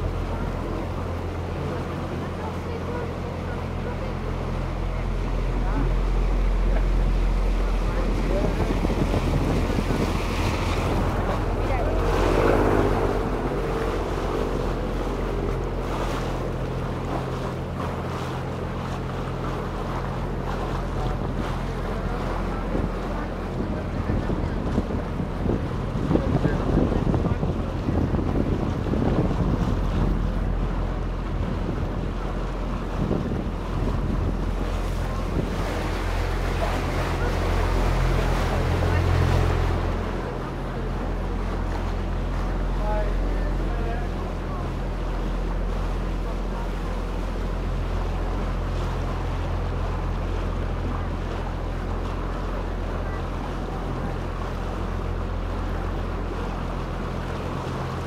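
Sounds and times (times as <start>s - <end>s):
boat motor humming: 0.0s - 58.0s
water splashing along hull: 0.0s - 58.0s
wind buffeting microphone: 4.4s - 43.6s.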